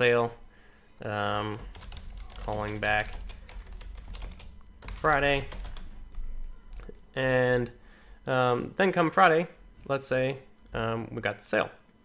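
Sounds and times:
computer keyboard typing: 1.5s - 6.2s.

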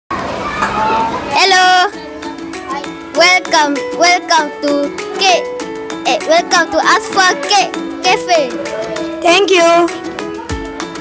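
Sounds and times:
children chattering: 0.2s - 10.8s
child's loud high call: 0.3s - 2.9s, 6.1s - 10.6s.

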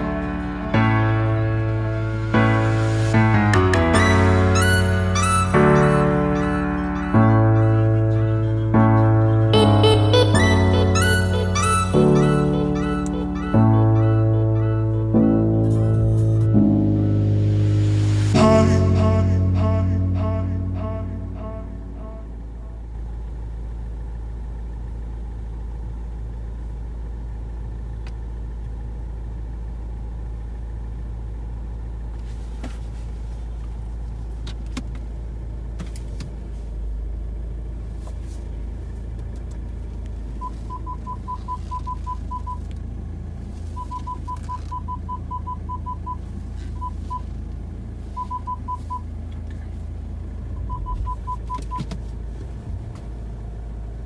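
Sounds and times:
car engine idling: 0.0s - 54.0s
parking sensor beeps: 40.4s - 42.7s, 43.7s - 47.4s, 48.1s - 49.1s, 50.5s - 52.0s.

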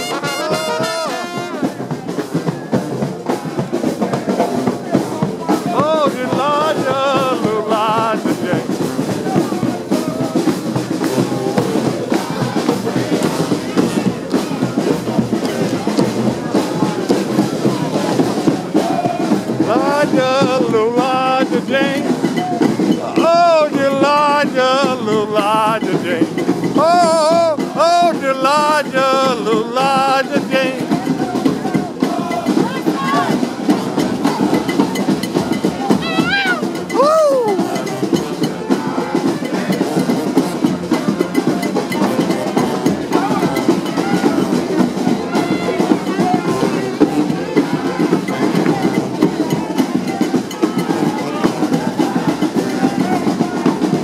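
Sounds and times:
brass horn playing melody: 0.0s - 1.8s, 45.2s - 48.5s
brass band playing: 0.0s - 54.0s
crowd noise: 0.0s - 54.0s
drums beating: 0.0s - 54.0s.

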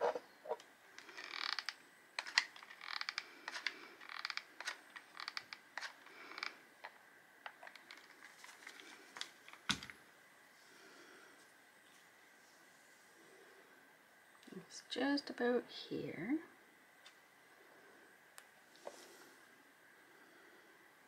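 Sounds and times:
glue gun clicking and creaking: 1.0s - 8.1s.

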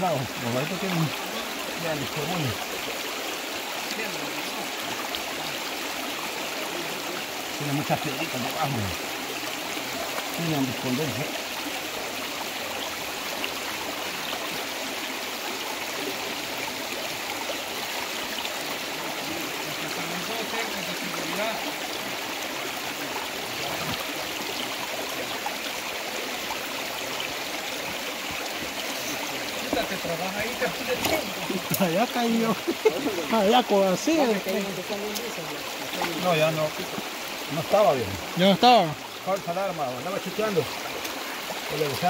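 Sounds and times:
river water flowing over rocks: 0.0s - 42.0s.

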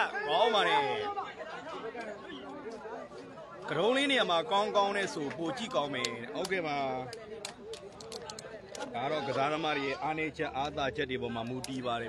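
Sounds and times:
faint background chatter: 0.0s - 12.0s.

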